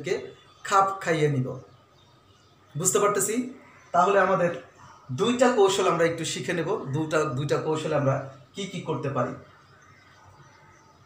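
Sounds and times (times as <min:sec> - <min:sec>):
man speaking: 0:00.0 - 0:01.6, 0:02.8 - 0:09.4.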